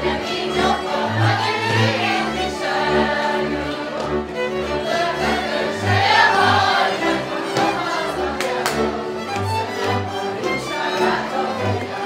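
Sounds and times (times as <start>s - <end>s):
fiddles playing dance tune: 0.0s - 12.0s.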